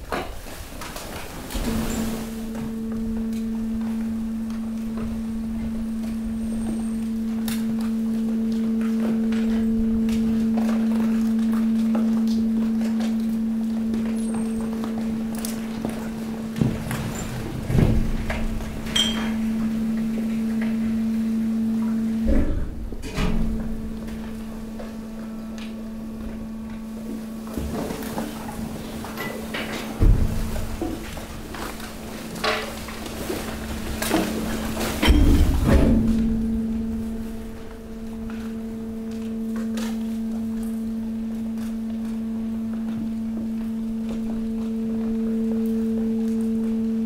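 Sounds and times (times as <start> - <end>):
hydraulic pump humming: 0.0 - 47.0.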